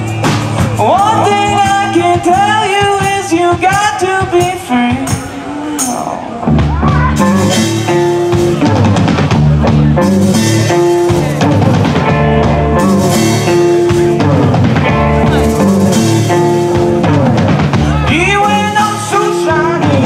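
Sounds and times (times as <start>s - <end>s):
bass guitar: 0.0s - 20.0s
drum kit: 0.0s - 20.0s
electric guitar long held notes: 0.0s - 20.0s.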